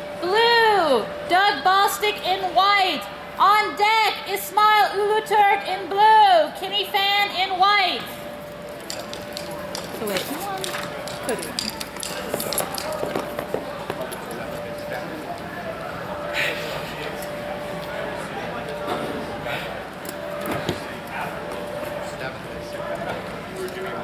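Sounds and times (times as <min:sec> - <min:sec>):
murmur of distant voices: 0:00.0 - 0:24.0.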